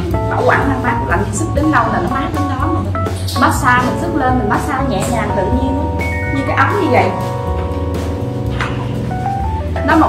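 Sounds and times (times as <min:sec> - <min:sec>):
instrumental background music: 0:00.0 - 0:10.0.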